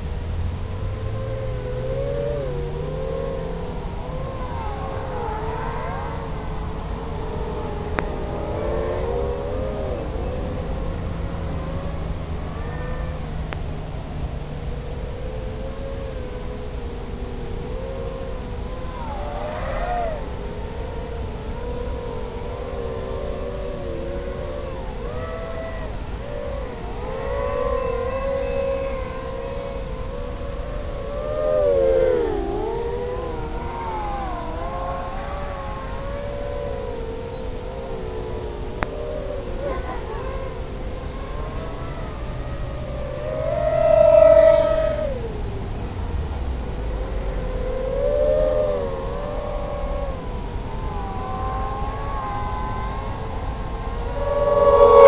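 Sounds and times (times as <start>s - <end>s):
drone motors whining: 0.0s - 55.0s.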